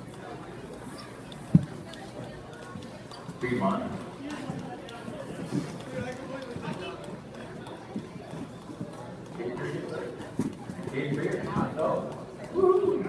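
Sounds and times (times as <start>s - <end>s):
people talking indistinctly: 0.0s - 13.0s.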